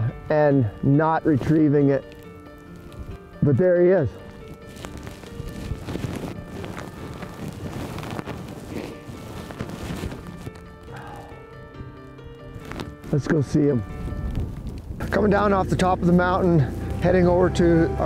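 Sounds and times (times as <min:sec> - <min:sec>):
background music held notes: 0:00.0 - 0:18.0
rustling: 0:01.2 - 0:03.4, 0:04.0 - 0:18.0.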